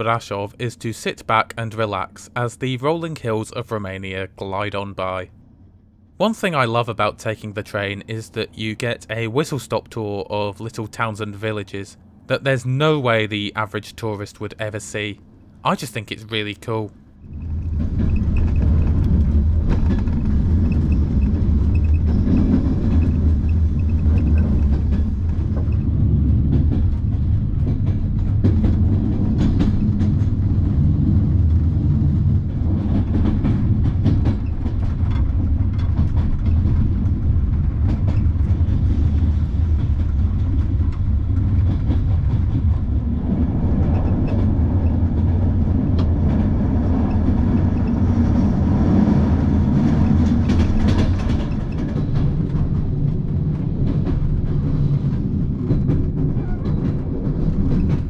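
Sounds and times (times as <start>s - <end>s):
train carriage rumbling: 0.0s - 58.0s
wheels clicking over rail joints: 16.6s - 58.0s.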